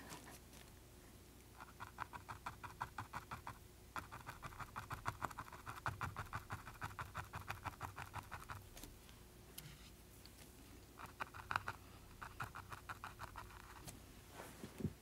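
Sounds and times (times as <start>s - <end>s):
paintbrush scratching on canvas: 11.0s - 13.9s.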